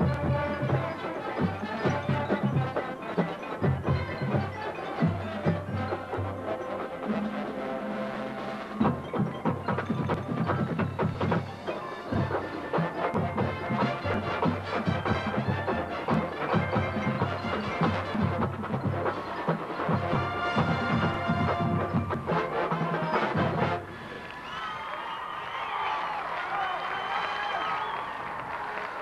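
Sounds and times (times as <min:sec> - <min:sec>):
marching band playing: 0:00.0 - 0:24.0
crowd cheering and whistling: 0:19.1 - 0:29.0.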